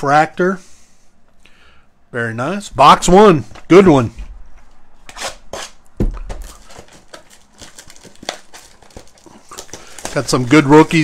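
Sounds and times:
shrink-wrap crinkling and tearing: 0:05.1 - 0:11.0.

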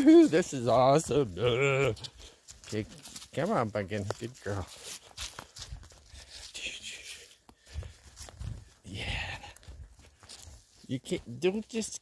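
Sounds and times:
bare feet on pine needles: 0:00.0 - 0:12.0.

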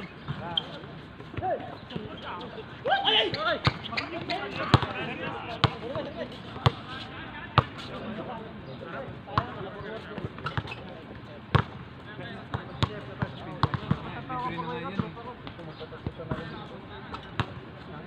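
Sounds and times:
players' voices: 0:00.0 - 0:18.0
basketball bouncing on hard court: 0:03.6 - 0:05.0, 0:06.6 - 0:06.8, 0:12.8 - 0:14.1.

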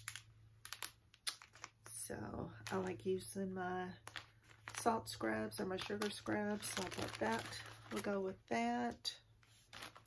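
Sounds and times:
plastic packaging crinkling and clicking: 0:00.0 - 0:03.1, 0:04.0 - 0:08.2, 0:09.6 - 0:10.0.

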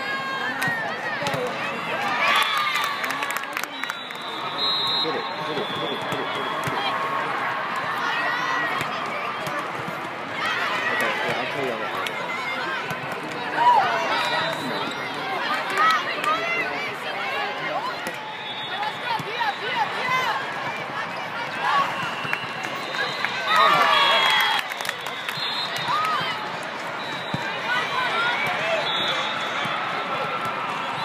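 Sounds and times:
crowd chatter: 0:00.0 - 0:31.0
players calling: 0:00.6 - 0:09.4.

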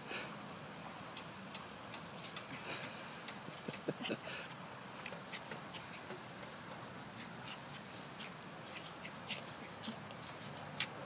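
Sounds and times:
faint scattered clicks: 0:01.1 - 0:11.0
soft rustles on grass: 0:04.0 - 0:11.0.

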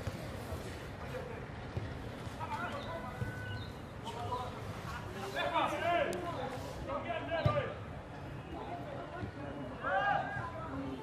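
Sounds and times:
voices shouting outdoors: 0:02.4 - 0:11.0.

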